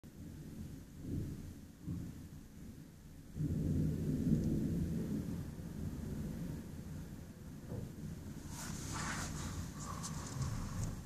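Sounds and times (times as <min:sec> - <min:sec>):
thunder rumbling: 0:00.1 - 0:11.0.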